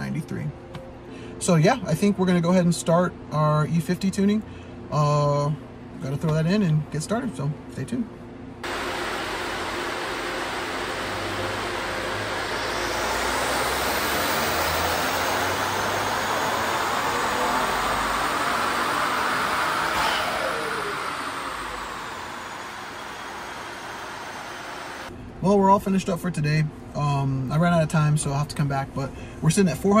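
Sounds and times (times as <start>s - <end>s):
dynamometer rollers winding down: 8.6s - 25.1s
engine roaring on a dynamometer: 8.6s - 25.1s
turbo whine climbing in pitch: 8.6s - 25.1s.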